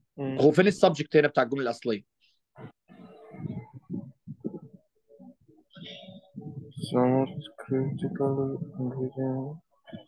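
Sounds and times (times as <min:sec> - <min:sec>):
muffled person's voice: 0:06.4 - 0:10.0.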